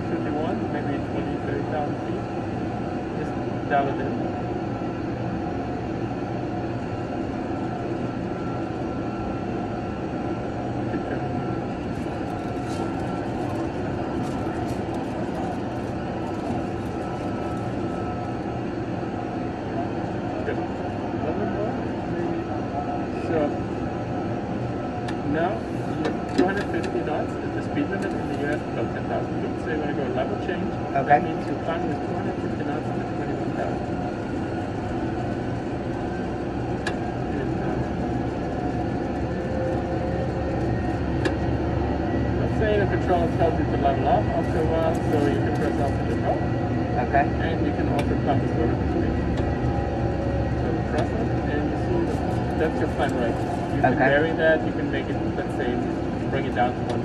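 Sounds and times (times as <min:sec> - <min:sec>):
simulated engine and airflow rumble: 0:00.0 - 0:57.0
low talk: 0:25.0 - 0:34.7, 0:36.8 - 0:39.4, 0:41.3 - 0:57.0.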